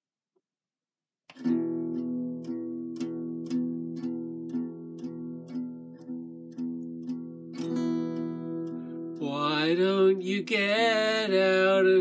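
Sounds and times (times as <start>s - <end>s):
acoustic guitar strumming chords: 1.3s - 12.0s.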